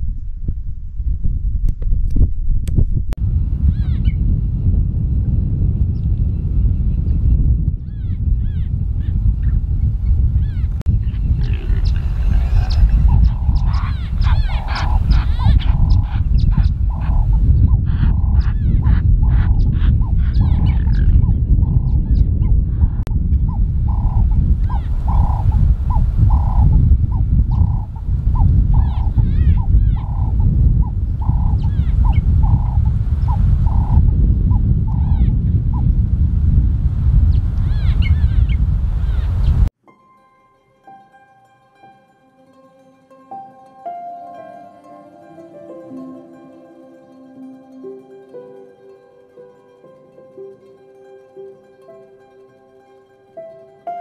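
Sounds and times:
heavy low rumble: 0:00.0 - 0:39.7
animal repeated pitched calls: 0:11.4 - 0:17.3.

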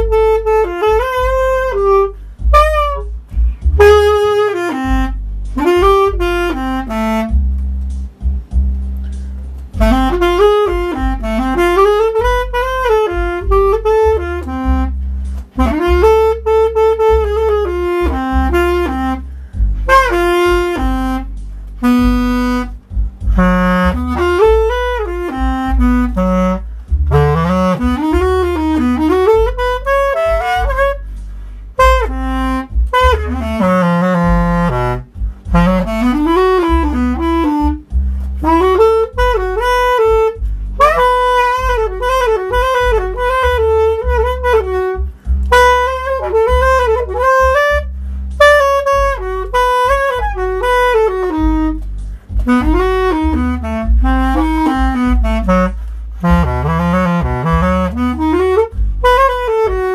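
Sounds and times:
backing track with bass line: 0:00.0 - 0:59.9
clarinet jazz-blues solo: 0:00.0 - 0:59.9.

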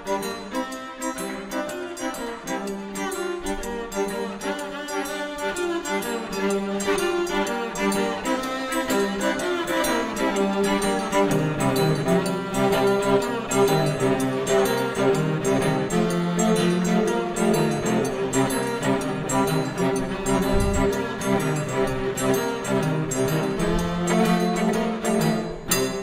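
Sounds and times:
cello notes: 0:00.0 - 0:26.0
viola melody: 0:00.0 - 0:26.0.

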